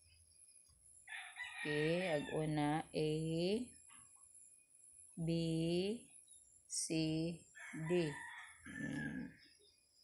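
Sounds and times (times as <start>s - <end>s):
rooster crowing: 1.1s - 2.4s, 7.6s - 9.4s
woman speaking: 1.7s - 3.7s, 5.2s - 6.0s, 6.7s - 9.3s.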